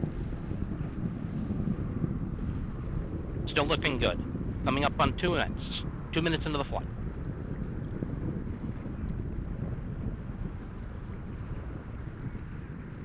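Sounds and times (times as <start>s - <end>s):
rocket engines rumbling: 0.0s - 13.0s.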